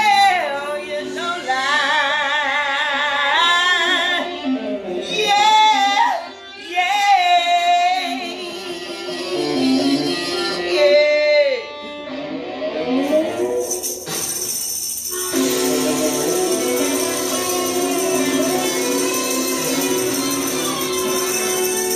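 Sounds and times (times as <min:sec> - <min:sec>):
woman singing blues: 0:00.0 - 0:11.8
instrumental backing: 0:00.0 - 0:21.9
tambourine: 0:13.1 - 0:21.9.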